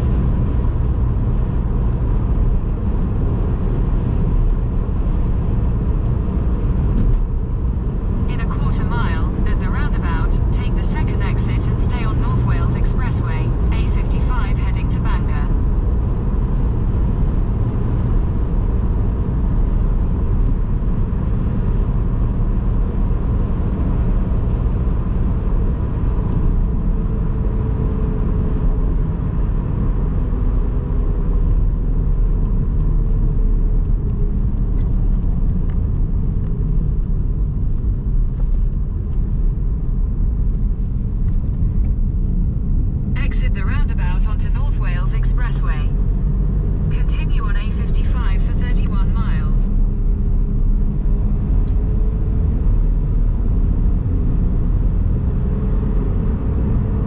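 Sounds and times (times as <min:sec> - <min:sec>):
car road and engine rumble: 0:00.0 - 0:57.0
voice-like sound: 0:43.2 - 0:46.0, 0:46.9 - 0:49.7.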